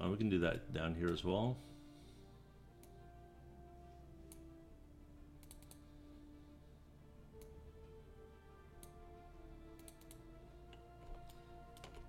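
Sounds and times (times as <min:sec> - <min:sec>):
soft background music: 0:00.0 - 0:12.0
computer mouse clicking: 0:05.4 - 0:05.8, 0:09.8 - 0:10.2.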